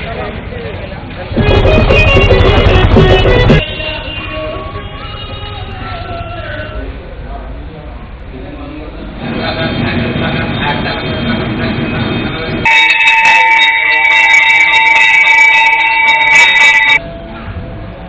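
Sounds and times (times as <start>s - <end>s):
mix of voices: 0.0s - 18.0s
temple bell ringing rapidly: 1.4s - 4.8s, 12.6s - 17.6s.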